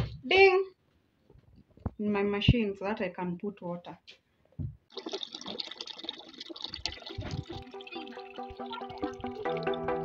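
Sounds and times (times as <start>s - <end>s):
water running into plastic bucket: 4.9s - 10.0s
background music: 7.0s - 10.0s.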